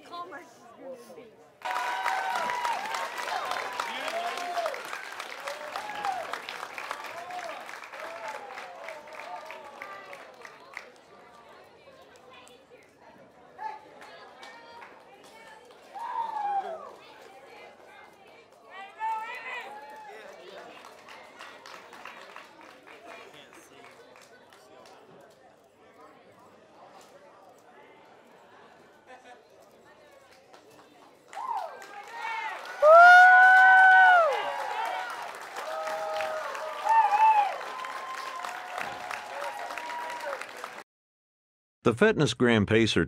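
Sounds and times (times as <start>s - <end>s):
high-pitched voices cheering: 1.6s - 6.4s, 31.3s - 40.6s
people clapping: 1.6s - 25.7s, 29.9s - 40.8s.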